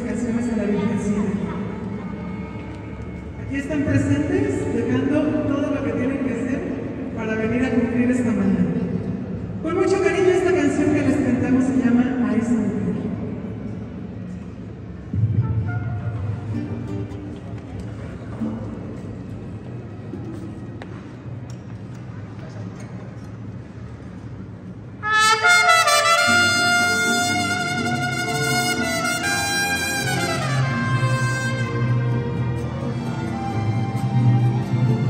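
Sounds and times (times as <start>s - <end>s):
mariachi strings: 0.0s - 8.5s, 14.3s - 20.7s, 24.9s - 35.0s
trumpets playing loud: 25.0s - 34.0s.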